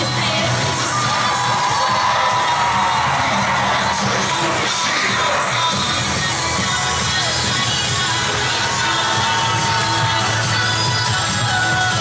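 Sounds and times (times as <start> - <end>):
pop-style cheer music: 0.0 - 12.0
crowd cheering and whooping: 0.6 - 12.0.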